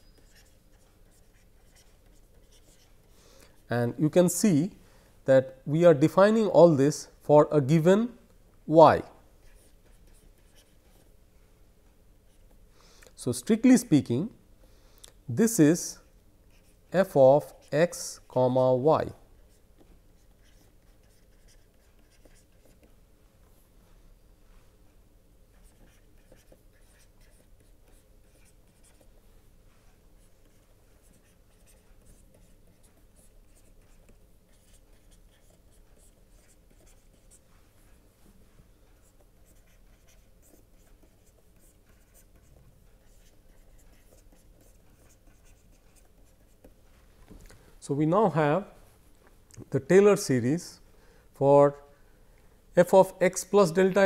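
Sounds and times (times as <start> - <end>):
stylus scratching on tablet: 0.0 - 4.4, 9.4 - 11.1, 15.5 - 23.0, 25.5 - 38.1, 38.9 - 46.8.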